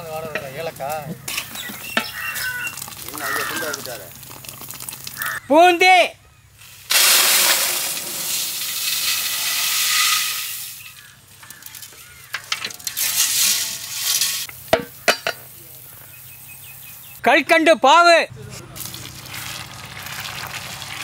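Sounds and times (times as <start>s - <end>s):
small pieces pouring into metal pot: 6.9s - 14.5s.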